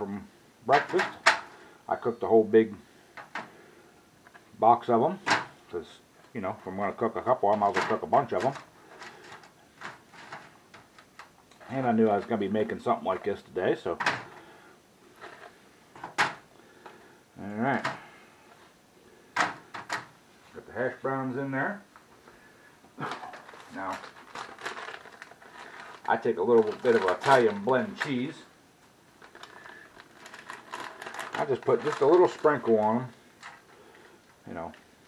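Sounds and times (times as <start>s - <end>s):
faint handling sounds: 0.0s - 35.0s
cheese bag rustling: 23.0s - 28.5s, 29.1s - 34.2s.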